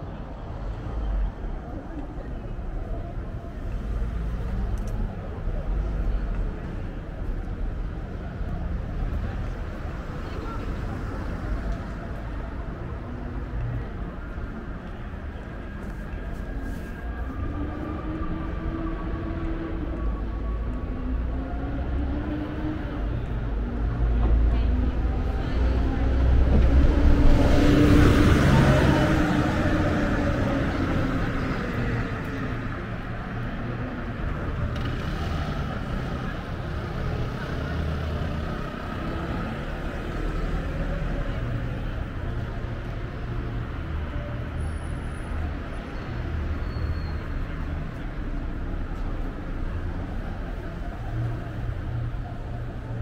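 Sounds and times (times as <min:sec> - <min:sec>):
road traffic rumble: 0:00.0 - 0:53.0.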